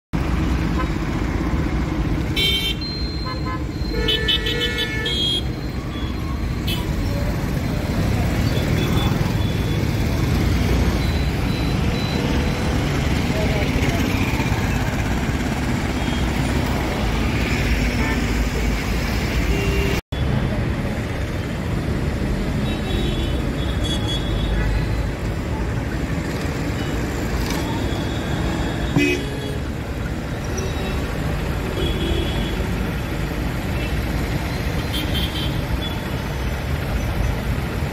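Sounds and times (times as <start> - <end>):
traffic engine rumble: 0.2 - 37.9.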